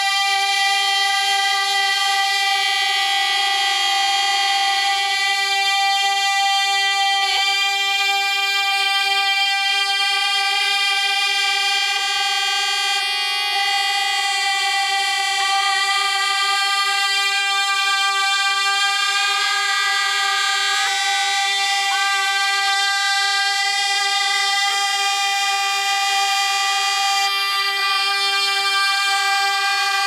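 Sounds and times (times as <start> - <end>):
women singing a sustained note: 0.0 - 30.0.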